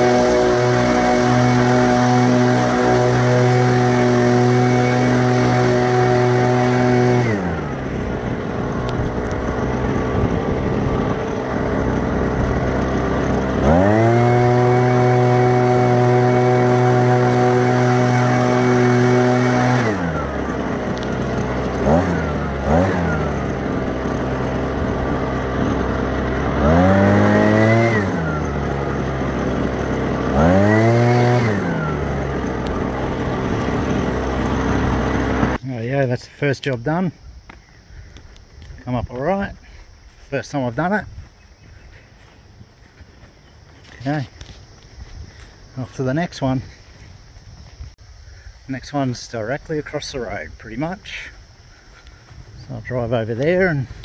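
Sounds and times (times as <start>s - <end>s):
small petrol engine revving: 0.0s - 35.6s, 49.6s - 54.0s.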